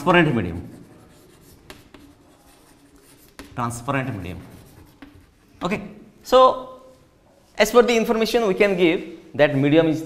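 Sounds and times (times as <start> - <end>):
chalk scratching on blackboard: 0.0 - 5.6
chalk tapping on board: 0.6 - 3.6, 4.4 - 5.5.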